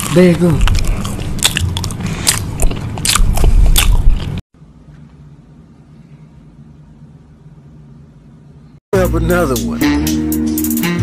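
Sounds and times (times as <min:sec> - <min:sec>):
crunching and chewing food: 0:00.0 - 0:04.4.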